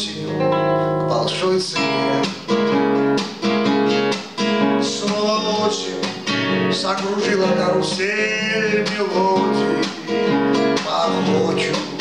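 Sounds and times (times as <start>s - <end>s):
nylon-string guitar strumming: 0.0s - 12.0s.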